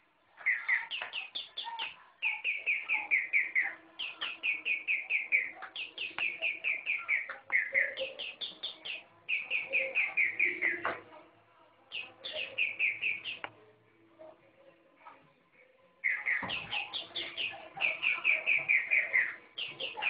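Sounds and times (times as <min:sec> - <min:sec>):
rapid high bird-like chirping: 0:00.4 - 0:10.9, 0:11.9 - 0:13.5, 0:16.0 - 0:20.0.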